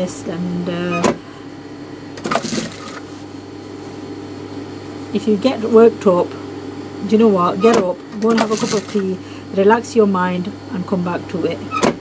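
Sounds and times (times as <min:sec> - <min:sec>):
sewing machine motor humming: 0:07.6 - 0:09.2.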